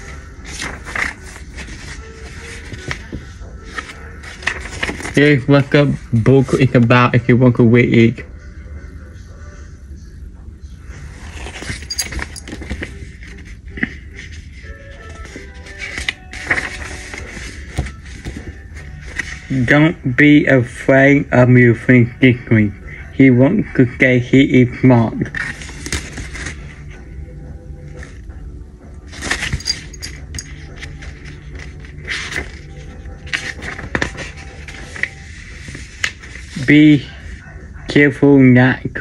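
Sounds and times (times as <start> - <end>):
book handling rustles and clicks: 0.0 - 6.8, 11.1 - 19.7, 25.2 - 27.0, 29.0 - 36.8.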